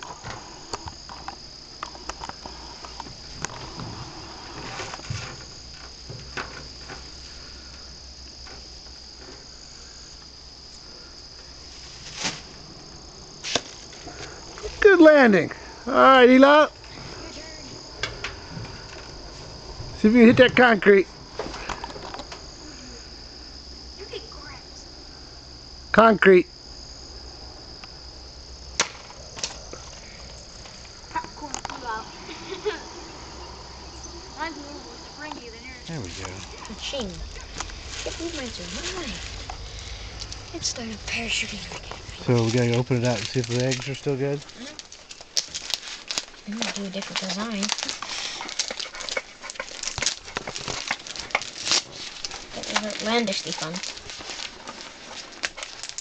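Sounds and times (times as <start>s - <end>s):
crickets chirring: 0.0s - 56.0s.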